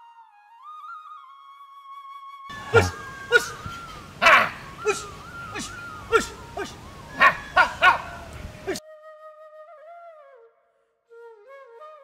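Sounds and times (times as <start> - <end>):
faint flute music: 0.0 - 12.0
dog barking: 4.2 - 5.0, 5.6 - 8.8.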